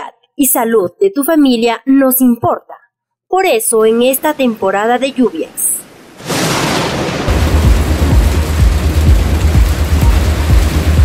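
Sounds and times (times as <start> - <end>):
heavy rain pouring: 5.0 - 11.0
deep low rumble: 6.6 - 11.0.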